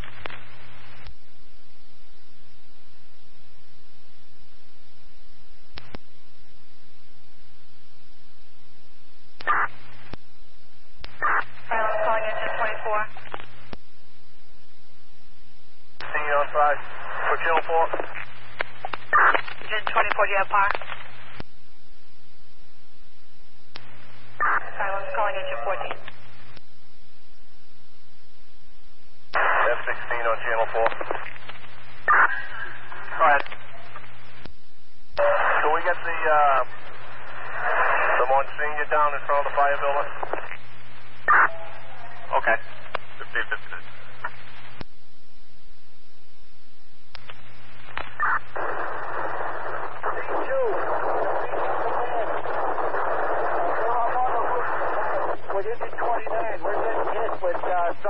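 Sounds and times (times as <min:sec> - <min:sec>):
radio hiss: 0:00.0 - 0:01.2, 0:09.4 - 0:10.2, 0:11.0 - 0:13.8, 0:16.0 - 0:21.5, 0:23.8 - 0:26.6, 0:29.3 - 0:34.5, 0:35.2 - 0:44.9, 0:47.1 - 0:58.0
steady low hum: 0:00.0 - 0:58.0
garbled radio voice transmissions: 0:11.1 - 0:13.4, 0:16.0 - 0:21.0, 0:24.4 - 0:26.1, 0:29.4 - 0:31.4, 0:32.0 - 0:34.0, 0:35.2 - 0:40.6, 0:41.2 - 0:44.4, 0:48.1 - 0:58.0.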